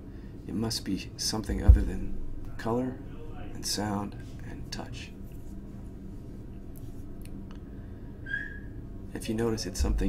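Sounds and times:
steady low hum: 0.0s - 10.0s
high whistle-like note: 8.2s - 8.7s.

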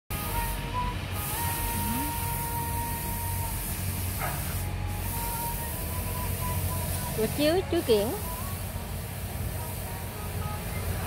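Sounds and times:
even hiss: 0.2s - 11.0s.

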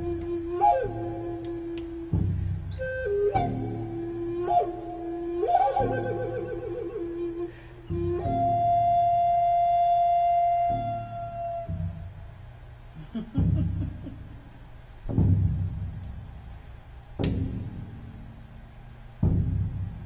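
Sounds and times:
low drum beats: 0.0s - 6.2s, 13.1s - 16.5s, 17.2s - 18.4s, 19.0s - 20.0s
flute playing slow melody: 0.0s - 12.4s.

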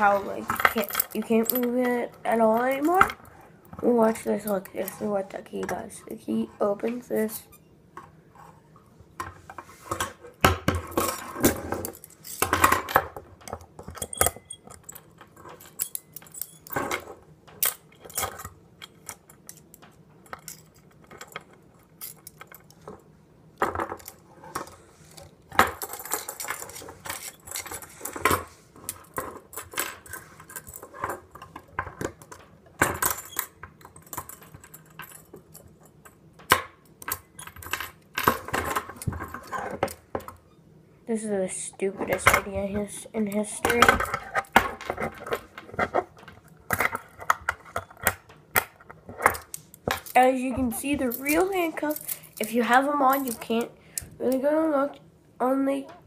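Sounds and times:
handcuffs clinking and rattling: 0.6s - 3.0s, 11.8s - 12.5s, 13.9s - 16.8s, 17.6s - 22.8s, 25.8s - 28.2s, 28.9s - 31.0s, 32.2s - 36.2s, 49.3s - 54.1s.

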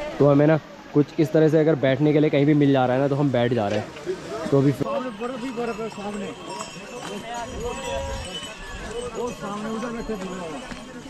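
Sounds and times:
people talking: 0.0s - 11.0s
hooves on wet stone: 5.4s - 11.0s.

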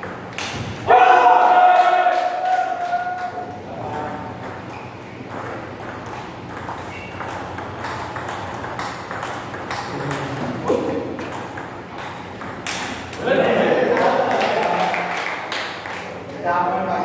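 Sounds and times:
table tennis ball clicking: 4.0s - 13.2s.

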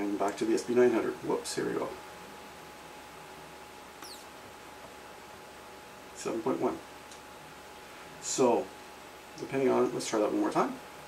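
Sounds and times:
low room hiss: 0.0s - 11.0s
flash whine falling in pitch: 4.0s - 4.4s.

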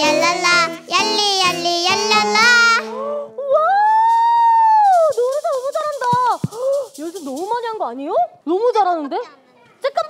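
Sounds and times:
keyboard and acoustic guitar: 0.0s - 3.4s.

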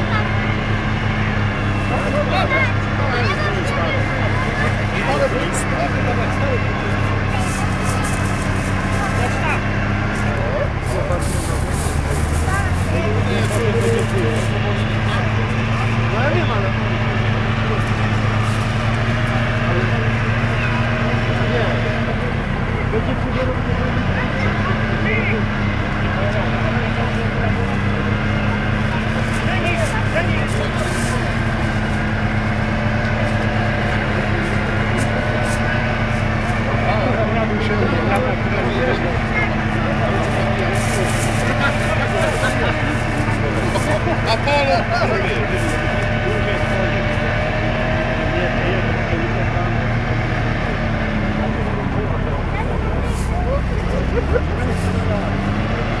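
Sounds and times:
vehicle engine under load: 0.0s - 56.0s.

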